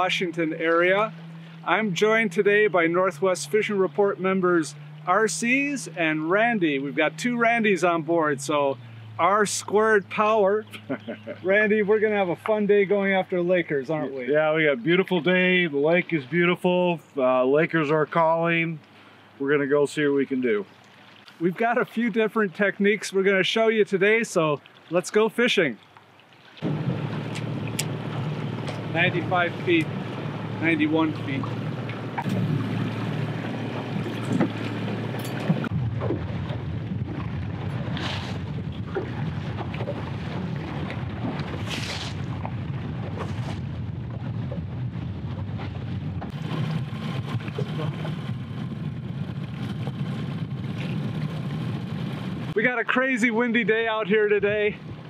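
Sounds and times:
man talking: 0:00.0 - 0:10.8, 0:11.4 - 0:18.8, 0:19.4 - 0:20.7, 0:21.4 - 0:25.8, 0:28.9 - 0:29.9, 0:30.6 - 0:31.5, 0:52.6 - 0:54.8
outboard motor running: 0:00.0 - 0:16.6, 0:26.5 - 0:53.0
water noise: 0:00.0 - 0:55.0
wind: 0:00.0 - 0:55.0
wind on microphone: 0:26.6 - 0:52.6.

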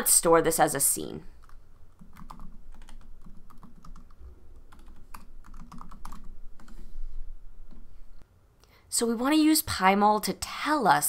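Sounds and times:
computer keyboard typing: 0:01.4 - 0:06.8.

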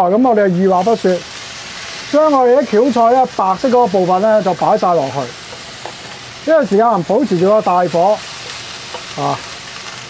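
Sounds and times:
food sizzling in a wok: 0:00.0 - 0:10.0.

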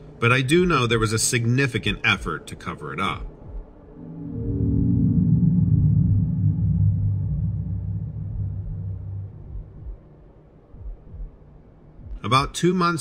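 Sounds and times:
low dark soundtrack drone: 0:03.2 - 0:12.1.

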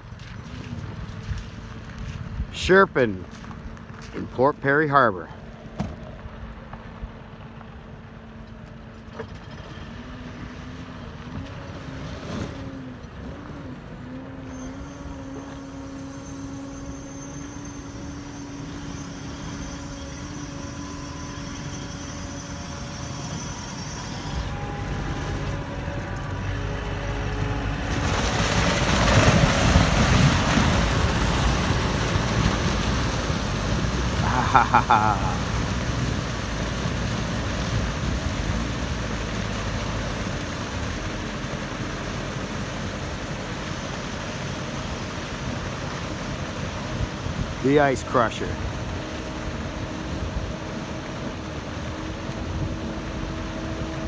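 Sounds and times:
tyres churning water and ice: 0:00.0 - 0:05.8, 0:08.1 - 0:54.0
diesel engine running: 0:00.0 - 0:54.0.

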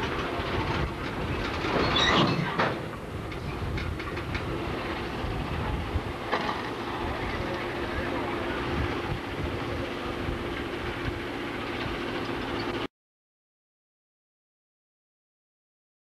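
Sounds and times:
diesel locomotive rumbling: 0:00.0 - 0:12.9
rail cars knocking: 0:00.0 - 0:12.9.

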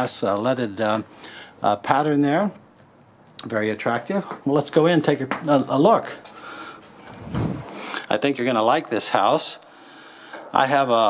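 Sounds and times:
door rubbing as it swings: 0:07.2 - 0:07.7.

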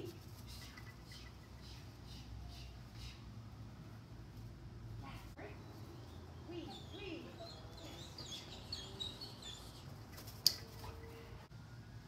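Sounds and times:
small birds chirping: 0:00.1 - 0:03.4, 0:05.3 - 0:11.2.

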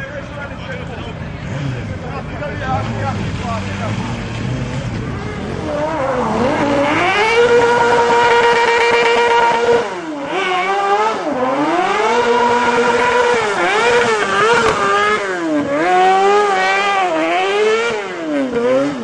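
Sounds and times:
small engine revving: 0:01.4 - 0:19.0.

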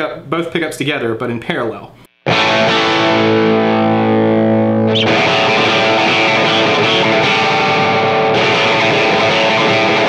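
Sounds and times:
electric guitar chord ringing: 0:02.3 - 0:10.0.

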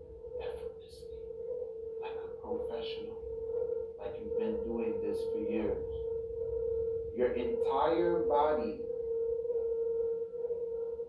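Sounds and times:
steady pure tone: 0:00.0 - 0:11.0.

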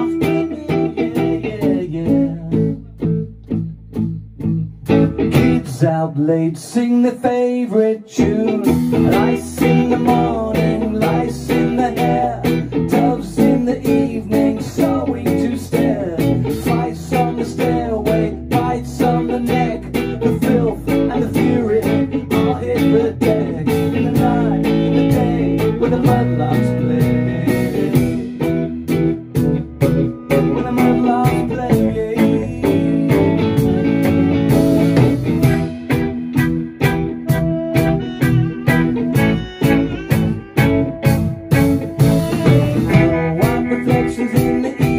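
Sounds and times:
bass guitar: 0:00.0 - 0:44.9
drums: 0:00.0 - 0:44.9
electric guitar: 0:00.0 - 0:44.9.

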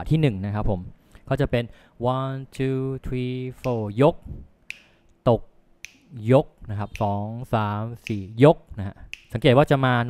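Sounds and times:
man counting aloud: 0:01.4 - 0:04.4, 0:05.3 - 0:10.0
finger snap: 0:03.6 - 0:03.9, 0:04.6 - 0:05.2, 0:05.8 - 0:06.2, 0:06.8 - 0:09.8.

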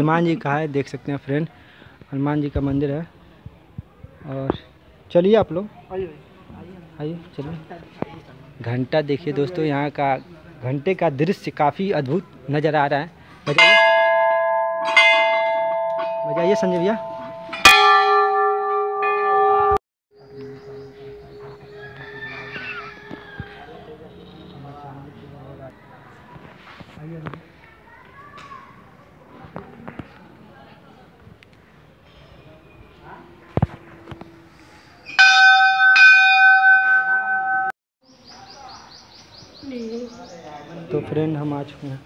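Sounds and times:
large brass bell ringing: 0:13.5 - 0:19.8, 0:20.4 - 0:22.7, 0:35.0 - 0:37.7.

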